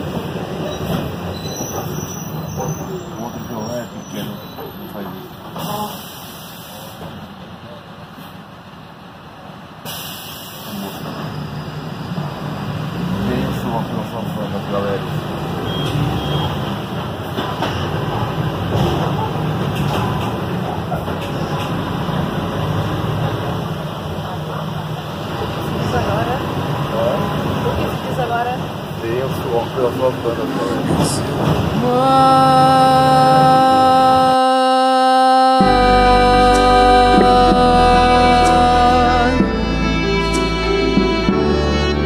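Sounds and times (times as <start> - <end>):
bus engine hum: 0.0 - 42.0.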